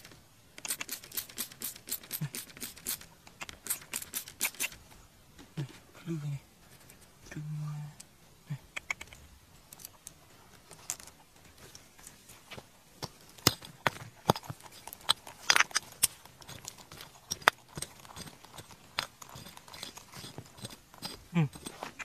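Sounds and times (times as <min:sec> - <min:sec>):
fingers scraping stony soil: 0:00.6 - 0:04.8, 0:12.1 - 0:22.0.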